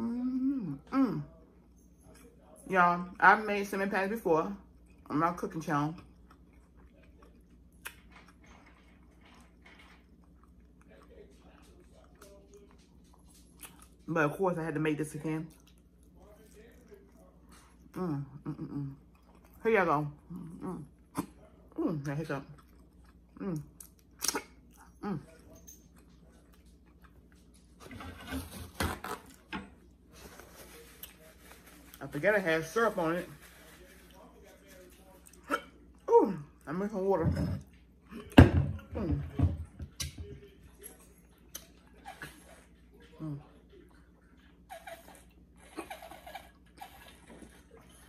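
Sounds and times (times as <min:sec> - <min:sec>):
person humming mm: 0:00.0 - 0:01.2
wet mouth smack: 0:24.2 - 0:24.4.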